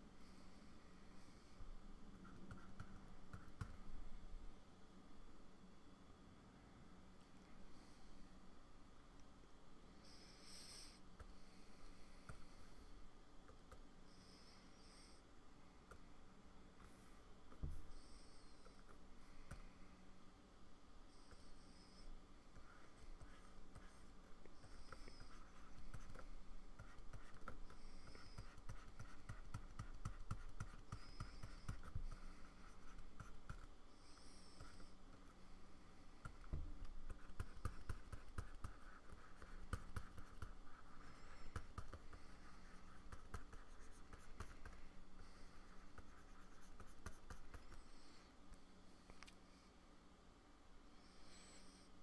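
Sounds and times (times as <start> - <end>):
pen stylus scratching on screen: 22.6 - 35.2, 36.2 - 48.0.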